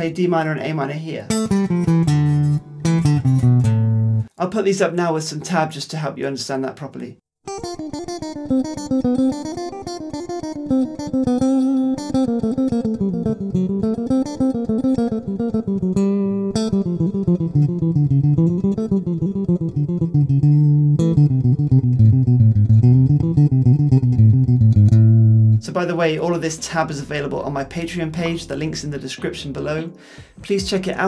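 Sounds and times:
electric guitar playing fast scales: 7.5s - 25.6s.

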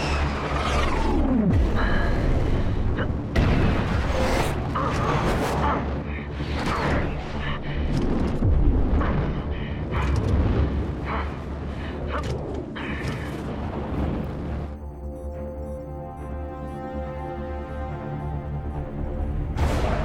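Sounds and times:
film score: 0.0s - 20.0s.

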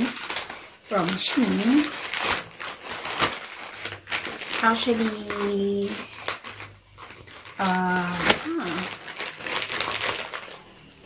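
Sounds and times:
plastic mailer bag crinkling: 0.0s - 11.0s.

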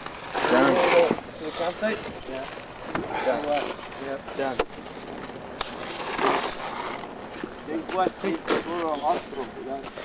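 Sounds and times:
men talking: 0.4s - 4.7s, 7.3s - 10.0s.

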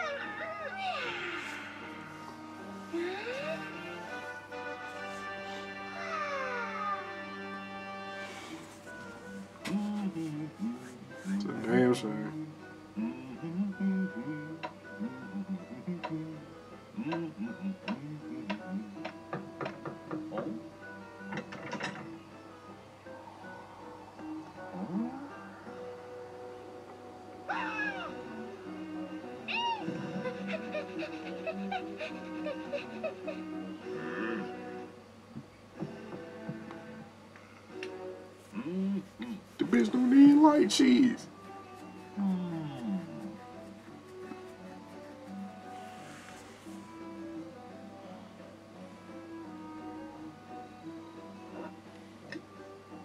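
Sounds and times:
cartoon background music: 0.0s - 53.0s.

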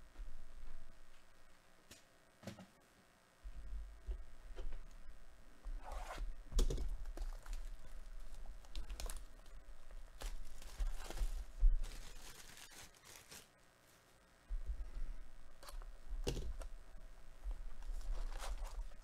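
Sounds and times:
plastic wrap tearing and crinkling: 6.6s - 13.6s, 17.8s - 19.0s.

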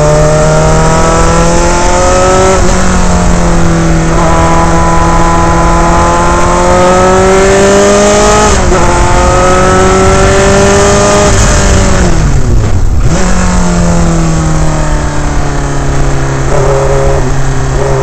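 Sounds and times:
racing engine at full throttle: 0.0s - 18.0s.

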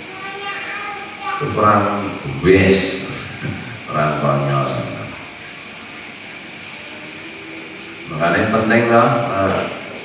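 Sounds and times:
steady background noise with hum: 0.0s - 10.0s.

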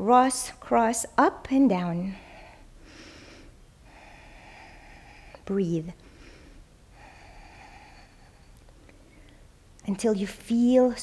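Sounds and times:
woman breathing hard through nose: 2.1s - 5.4s, 6.0s - 9.5s.

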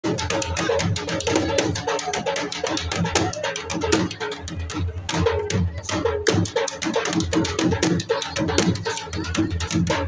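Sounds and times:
dhol drum rhythm: 0.0s - 10.0s.

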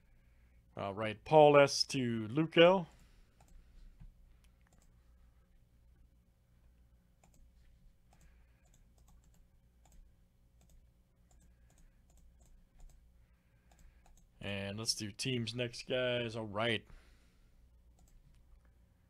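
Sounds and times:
low steady hum: 0.0s - 19.0s
computer mouse clicks: 3.4s - 3.6s, 4.4s - 5.0s, 7.2s - 7.5s, 8.1s - 13.0s, 13.6s - 14.3s, 18.0s - 18.4s
keyboard clicks: 4.4s - 4.9s, 7.2s - 7.5s, 8.1s - 13.0s, 13.7s - 14.3s, 18.0s - 18.3s.

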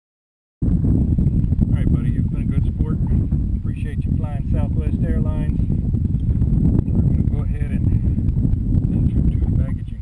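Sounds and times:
wind buffeting microphone: 0.6s - 10.0s.

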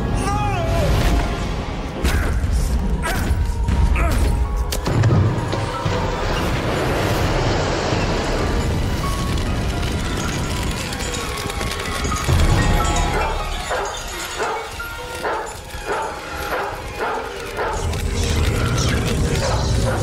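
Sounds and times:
dramatic orchestral score: 0.0s - 20.0s
fire burning in fireplace: 5.0s - 20.0s.

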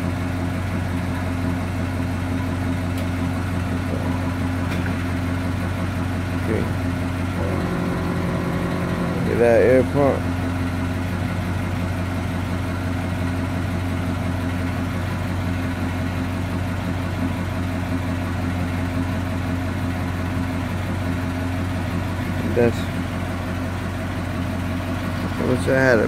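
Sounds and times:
low mechanical hum: 7.3s - 10.6s.

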